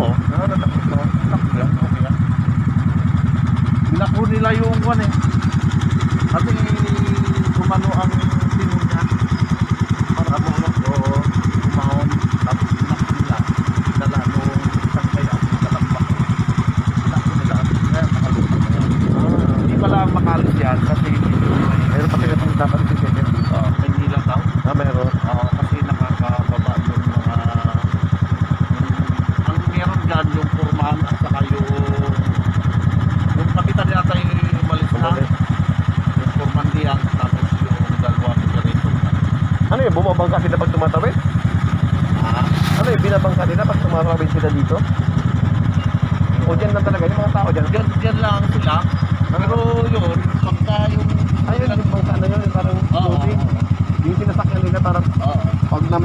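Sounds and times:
motorcycle engine idling: 0.0 - 56.0
voices talking: 0.0 - 56.0.

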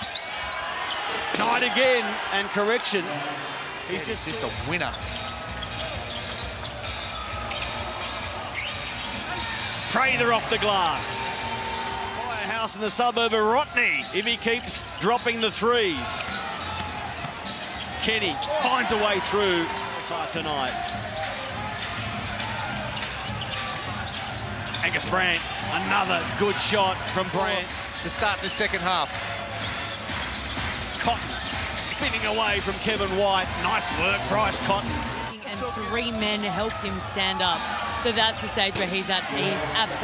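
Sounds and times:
arena crowd noise: 0.0 - 40.0.

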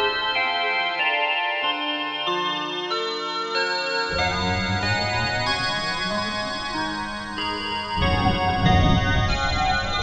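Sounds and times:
ambient music sustained tones: 4.1 - 10.0
deep rumbling layer: 4.1 - 10.0.

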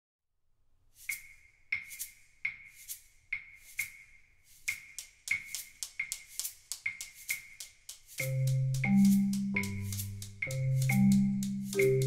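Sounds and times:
percussion tapping a rhythm: 1.0 - 12.0.

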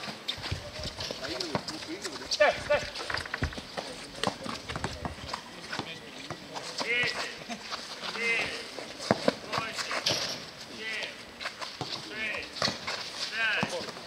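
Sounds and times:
footsteps on court: 0.0 - 14.0
ball bouncing: 0.4 - 7.2, 11.8 - 13.0
players calling out: 0.5 - 11.3.

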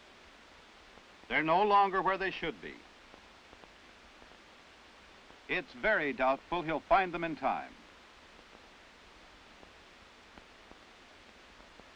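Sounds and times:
faint background hiss: 0.0 - 11.9
faint ticks: 2.6 - 5.5, 7.9 - 11.9.

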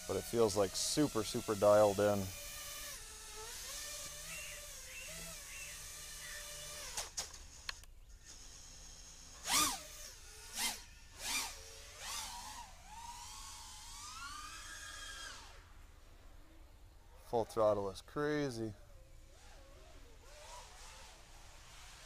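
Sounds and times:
quadcopter motors whining: 0.0 - 16.4, 18.5 - 22.0.

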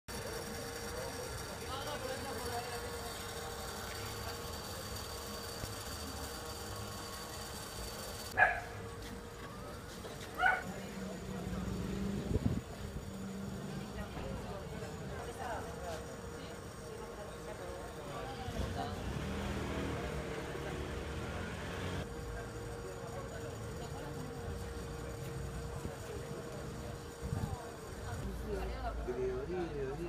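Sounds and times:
bystanders' voices: 0.1 - 30.0
traffic: 0.1 - 30.0.

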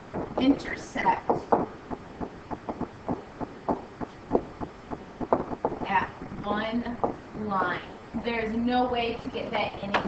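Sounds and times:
stylus tapping and scraping on screen: 0.0 - 7.7.

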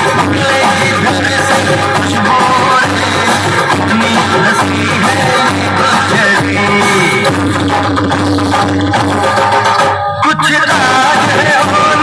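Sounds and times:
loud music with singing over loudspeakers: 0.0 - 12.0.

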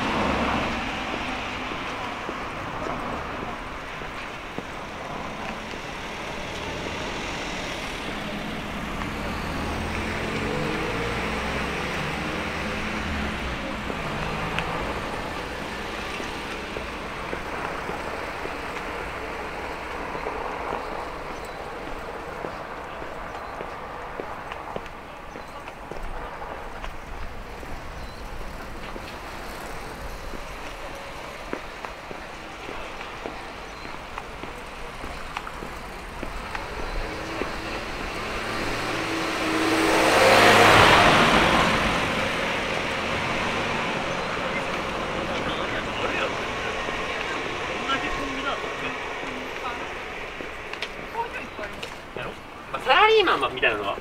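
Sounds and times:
low street hum: 0.0 - 54.0
truck driving past: 4.8 - 22.0, 34.1 - 52.5.

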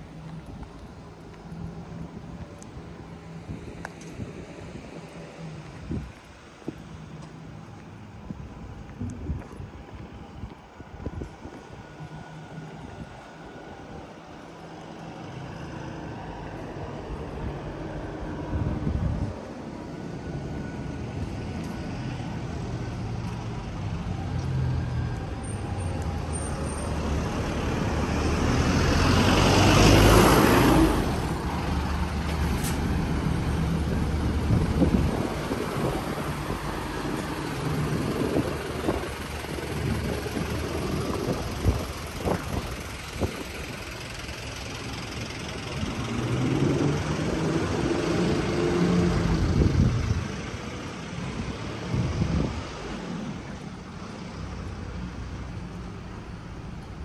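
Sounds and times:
bus diesel engine passing: 0.0 - 57.0
light traffic: 0.0 - 57.0
vehicle engine passing: 20.4 - 53.6.

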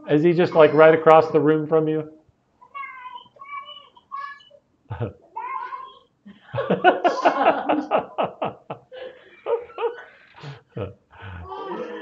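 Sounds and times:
small child squeaky voice: 2.6 - 4.6, 5.3 - 6.1.

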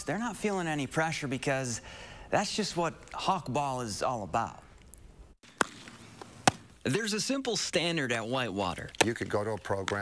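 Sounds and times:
baseball smacking into glove: 5.5 - 6.8.

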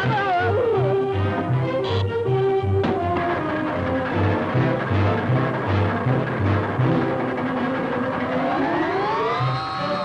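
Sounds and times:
rising siren-like whine: 6.9 - 10.0.

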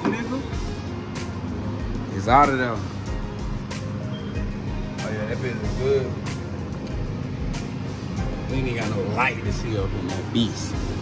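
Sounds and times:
background music with deep bass: 0.0 - 11.0.

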